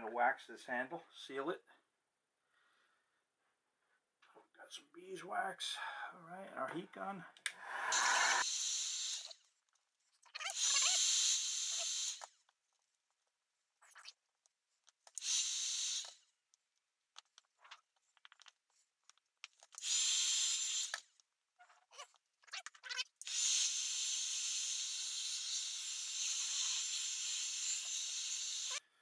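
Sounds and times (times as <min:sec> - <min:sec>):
electric heat gun blowing: 0:07.8 - 0:09.4, 0:10.5 - 0:12.3, 0:15.2 - 0:16.2, 0:19.7 - 0:21.1, 0:23.2 - 0:28.8.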